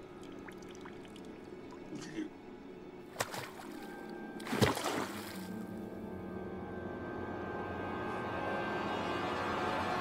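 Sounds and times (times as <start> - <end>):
slow dark orchestral music: 0.0 - 10.0.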